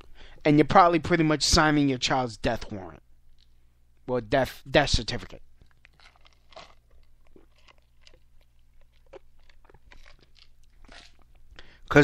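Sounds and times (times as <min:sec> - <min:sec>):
crunching and clicking: 0:05.6 - 0:11.4.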